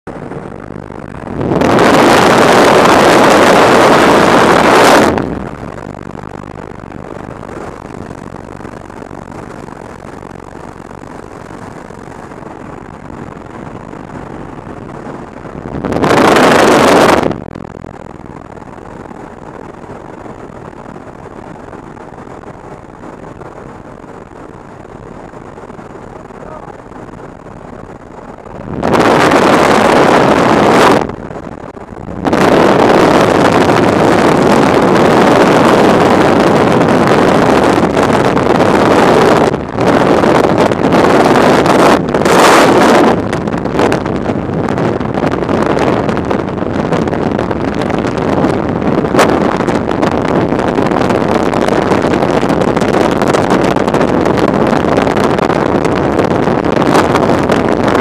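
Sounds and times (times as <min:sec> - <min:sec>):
airplane engine and slipstream rush: 0:00.0 - 0:58.0
wind blasting on microphone: 0:00.0 - 0:58.0.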